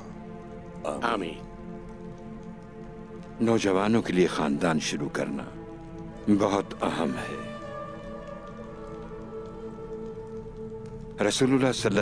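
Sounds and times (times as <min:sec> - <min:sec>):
faint crackly hiss: 0:00.0 - 0:12.0
soft sustained background score: 0:00.0 - 0:12.0.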